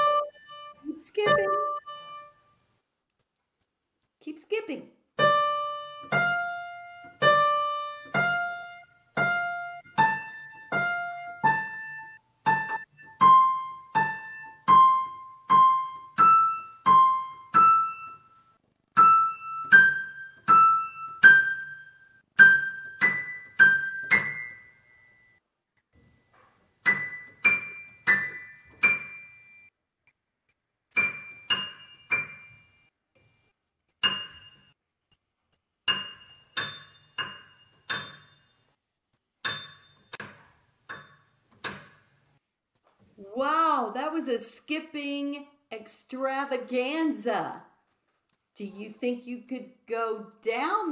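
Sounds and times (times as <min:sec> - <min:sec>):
slow piano notes: 0:00.0 - 0:02.4, 0:05.2 - 0:25.4, 0:26.8 - 0:29.7, 0:31.0 - 0:32.9, 0:34.0 - 0:34.8, 0:35.9 - 0:38.8, 0:39.4 - 0:42.4.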